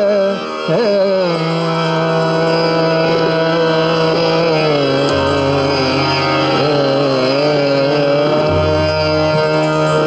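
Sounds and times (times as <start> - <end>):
harmonium: 0.0 - 10.0
man singing a long sliding note: 0.0 - 10.0
steady drone: 0.0 - 10.0.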